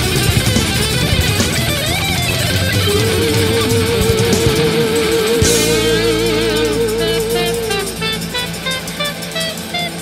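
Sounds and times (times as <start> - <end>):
instrumental rock music: 0.0 - 10.0
long wavering lead note: 2.9 - 9.9.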